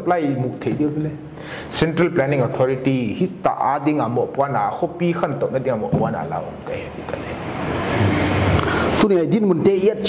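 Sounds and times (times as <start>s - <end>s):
traffic passing: 5.4s - 9.9s.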